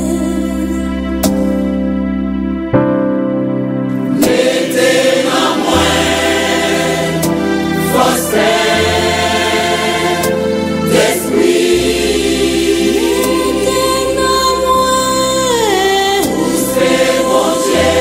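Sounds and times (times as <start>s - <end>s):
gospel choir singing: 4.0s - 18.0s.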